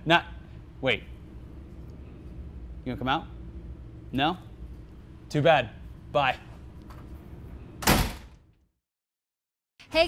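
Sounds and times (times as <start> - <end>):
door banging shut: 7.8 - 8.4.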